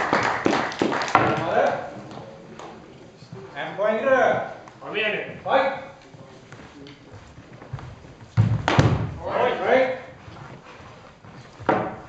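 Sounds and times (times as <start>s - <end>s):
loud heavy thump: 8.4s - 9.2s.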